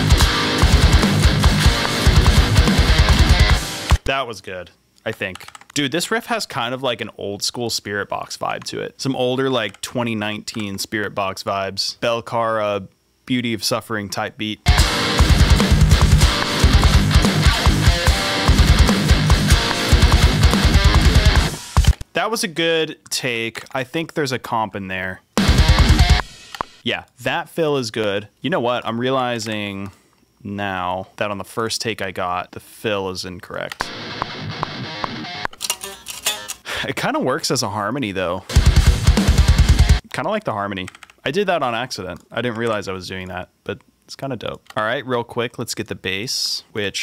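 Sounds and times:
distorted electric guitar riff: 0.0s - 4.1s, 14.7s - 22.0s, 25.4s - 26.5s, 33.8s - 36.6s, 38.5s - 40.0s
programmed metal drums: 0.0s - 4.1s, 14.7s - 22.0s, 25.4s - 26.8s, 38.5s - 40.0s.

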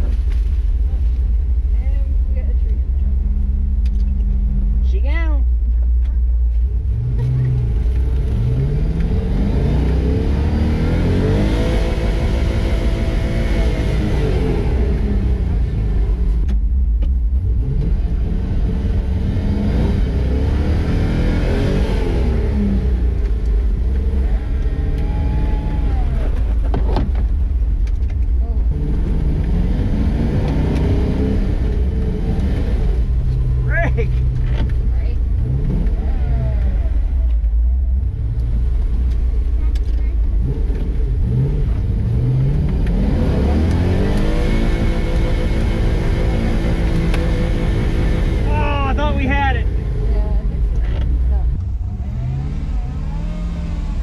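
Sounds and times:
truck engine revving: 6.7s - 16.5s, 17.2s - 54.0s.

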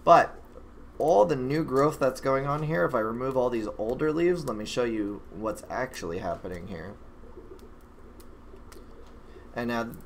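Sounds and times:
low room hum: 0.0s - 10.0s
faint clicks: 7.2s - 9.2s.

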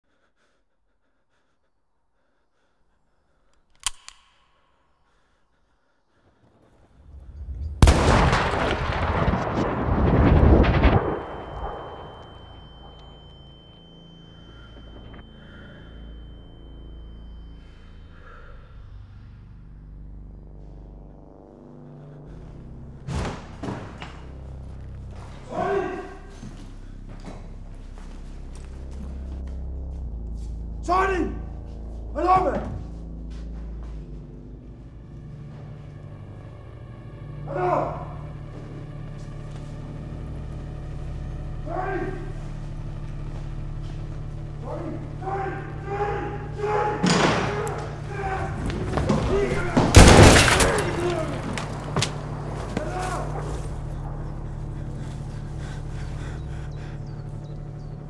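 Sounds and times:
low steady hum: 6.9s - 37.5s, 47.8s - 58.0s
low steady drone: 6.9s - 58.0s
heavy thuds: 22.4s - 25.6s
loud slam: 23.1s - 24.2s, 49.2s - 51.6s
man's raised voice: 25.4s - 26.4s, 30.8s - 31.5s, 41.7s - 42.4s.

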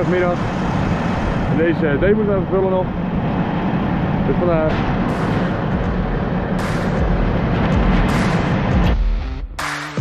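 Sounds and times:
diesel engine rough rumble: 0.0s - 10.0s.

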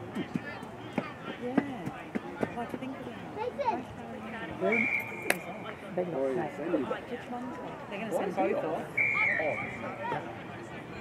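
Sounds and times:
voices and chatter: 0.0s - 11.0s
referee's whistle blast: 4.7s - 5.4s, 9.0s - 9.9s.

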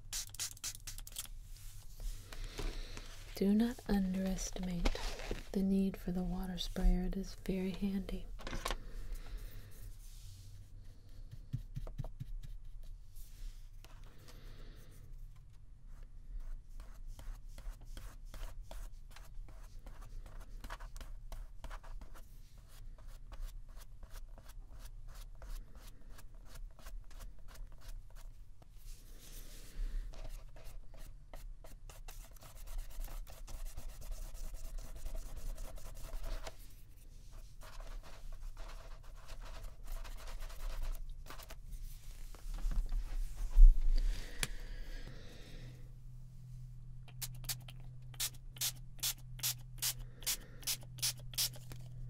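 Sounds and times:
paintbrush strokes on paper: 9.3s - 13.6s, 23.8s - 43.8s.

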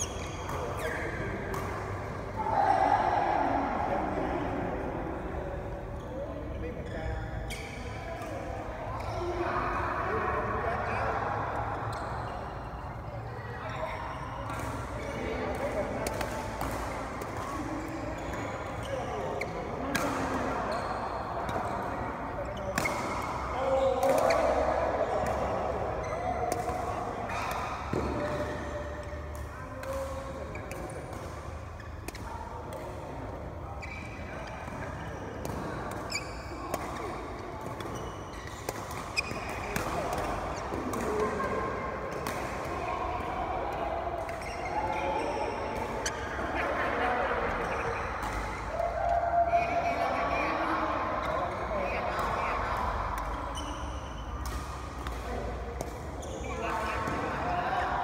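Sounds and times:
badminton rackets hitting shuttlecocks: 14.5s - 18.9s, 19.7s - 20.5s, 22.7s - 23.4s, 26.4s - 33.4s, 35.4s - 43.4s, 53.2s - 57.5s
people talking: 38.8s - 48.8s, 49.4s - 53.7s.

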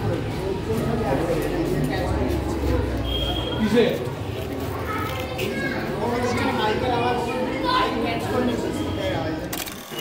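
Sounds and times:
distant voices chattering: 0.0s - 10.0s.

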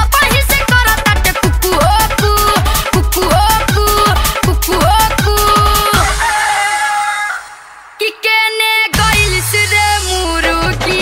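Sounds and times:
song music: 0.0s - 11.0s.

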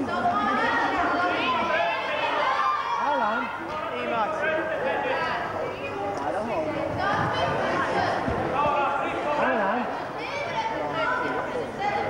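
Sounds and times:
people shouting: 0.0s - 3.4s.

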